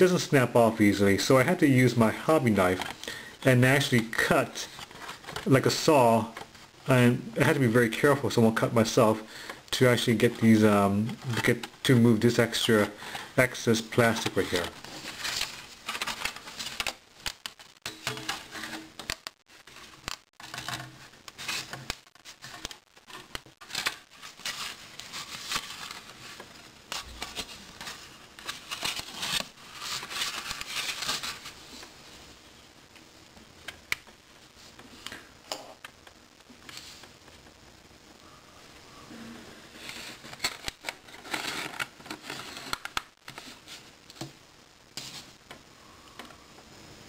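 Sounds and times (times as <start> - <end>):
plastic sheet crinkling: 1.1 - 31.9, 39.8 - 44.3
knife scraping plastic: 4.6 - 5.6, 9.2 - 13.4, 14.0 - 31.6, 39.8 - 43.5.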